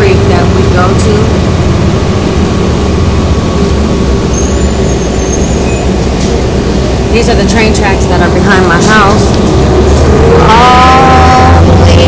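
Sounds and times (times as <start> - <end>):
bus engine and road rumble: 0.0 - 12.0.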